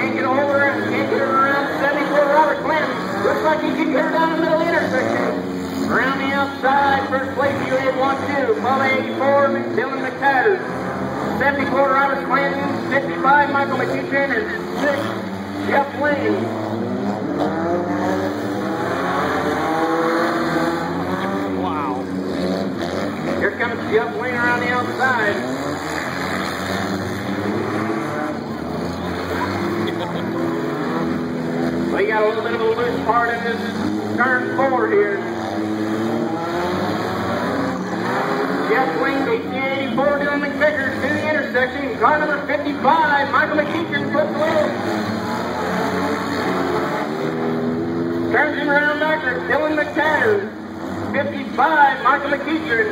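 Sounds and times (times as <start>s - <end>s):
race car engines revving: 0.0s - 52.9s.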